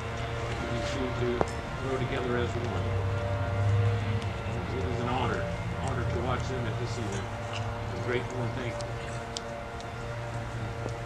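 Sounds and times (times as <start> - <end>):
faint murmured voices: 0.0 - 11.0
low engine drone: 0.0 - 11.0.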